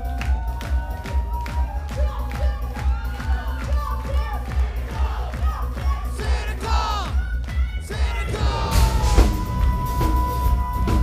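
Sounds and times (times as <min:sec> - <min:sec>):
loud shouted voices: 0:02.9 - 0:07.2, 0:07.8 - 0:09.2.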